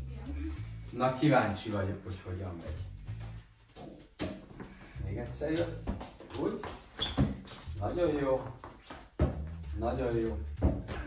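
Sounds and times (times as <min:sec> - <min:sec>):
faint low music: 0:00.0 - 0:11.0.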